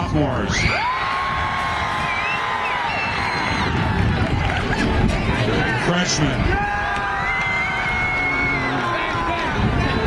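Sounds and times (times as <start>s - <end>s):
crowd cheering: 0.0s - 10.0s
high-pitched screams: 0.5s - 3.9s, 6.6s - 9.3s.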